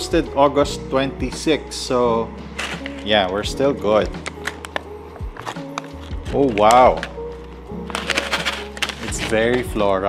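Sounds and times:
background music: 0.0 - 10.0
plastic bag zip crackling: 7.8 - 9.6.

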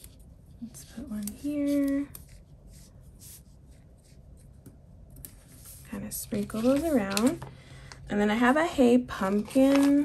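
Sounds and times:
paper stickers rustling and crackling: 0.0 - 2.4, 5.2 - 7.5, 9.1 - 10.0.

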